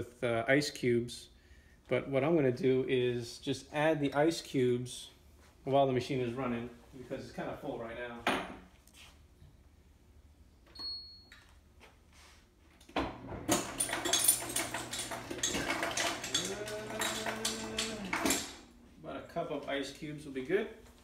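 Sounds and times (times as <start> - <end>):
ice cubes clattering into a cup: 14.0 - 18.2.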